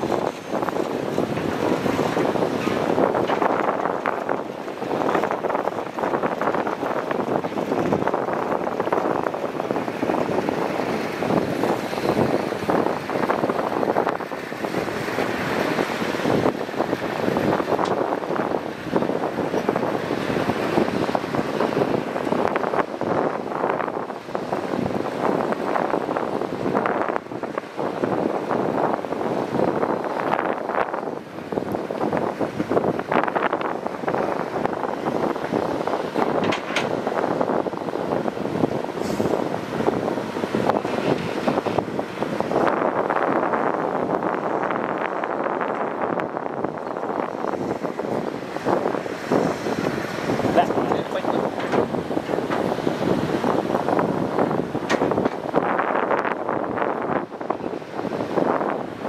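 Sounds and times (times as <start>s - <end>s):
excavator engine and hydraulics: 31.2s - 57.0s.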